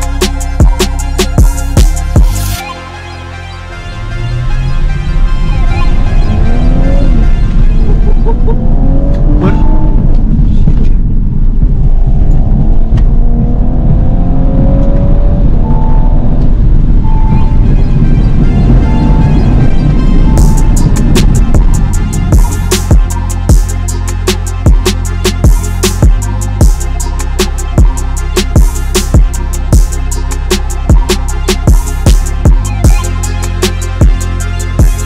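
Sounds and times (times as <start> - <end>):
beat-driven music: 0.0 - 10.2, 14.4 - 35.0
car engine accelerating: 4.1 - 35.0.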